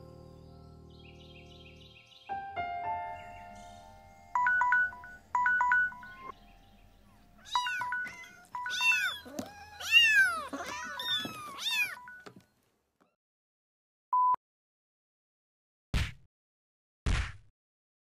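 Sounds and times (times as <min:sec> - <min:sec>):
phone alarm two-note beeps: 0:04.3 - 0:06.3, 0:07.5 - 0:09.3
kittens meowing: 0:07.0 - 0:12.3.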